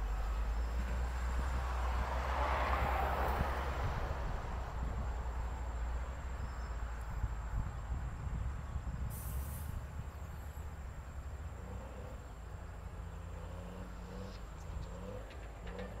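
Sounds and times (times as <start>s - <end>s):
diesel engines rumbling: 0.0s - 16.0s
brief hiss: 9.1s - 9.8s.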